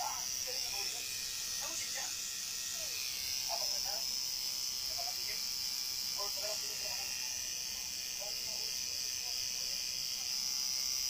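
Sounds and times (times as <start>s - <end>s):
tattoo machine buzzing: 0.0s - 11.0s.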